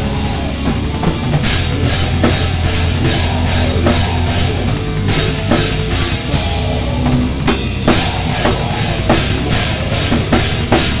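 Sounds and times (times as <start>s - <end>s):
drums and crashing cymbals: 0.0s - 11.0s
rock band playing heavy rock: 0.0s - 11.0s.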